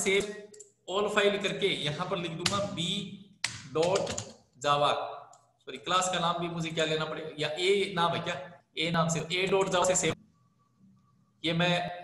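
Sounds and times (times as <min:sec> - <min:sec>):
man speaking: 0:00.0 - 0:10.2, 0:11.4 - 0:12.0.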